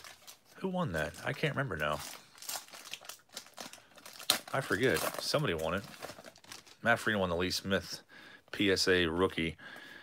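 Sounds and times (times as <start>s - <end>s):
paper wrapper crinkling: 0.0s - 7.2s.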